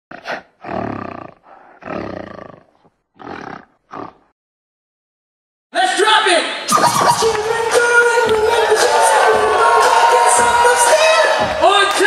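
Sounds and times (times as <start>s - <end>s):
rough animal roars: 0.1s - 4.3s.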